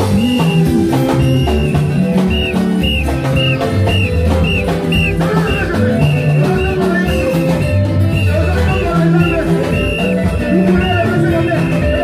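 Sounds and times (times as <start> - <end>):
upbeat praise music: 0.0 - 12.0
whistle toots: 0.0 - 12.0.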